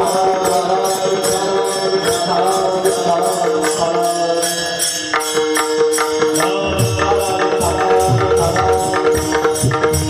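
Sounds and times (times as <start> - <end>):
hand cymbals struck: 0.0 - 10.0.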